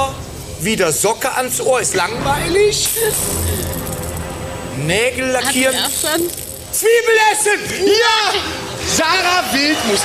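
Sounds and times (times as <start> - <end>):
background music: 0.0 - 10.0
prize wheel spinning: 2.9 - 4.3, 5.2 - 7.2.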